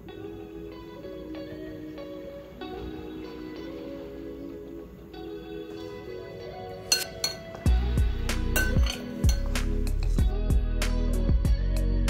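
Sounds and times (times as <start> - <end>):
background guitar music: 0.0 - 12.0
spoon clinking against glass bowl: 6.9 - 7.7, 8.5 - 10.2.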